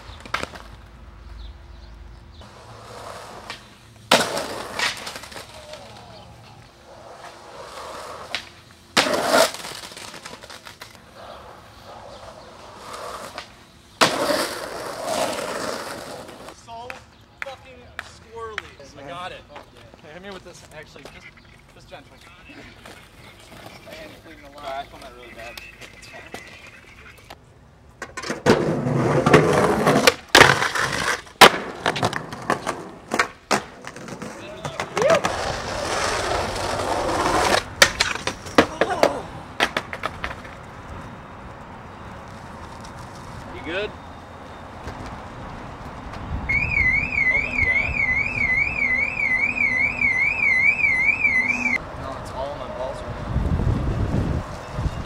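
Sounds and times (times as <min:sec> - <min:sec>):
skateboard wheels rolling on concrete: 0:00.0 - 0:55.0
skateboard tail pops and landings: 0:03.4 - 0:05.6, 0:08.3 - 0:11.0, 0:13.2 - 0:15.7, 0:28.0 - 0:35.5, 0:37.2 - 0:40.5
warbling electronic alarm: 0:46.5 - 0:51.8.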